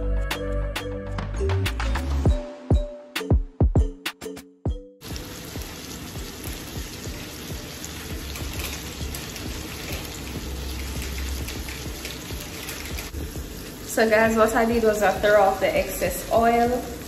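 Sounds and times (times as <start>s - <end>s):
fish sizzling in hot oil: 5.0s - 17.0s.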